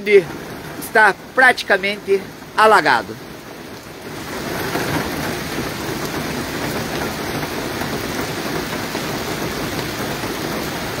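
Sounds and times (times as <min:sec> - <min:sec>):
heavy rain falling: 0:00.0 - 0:11.0.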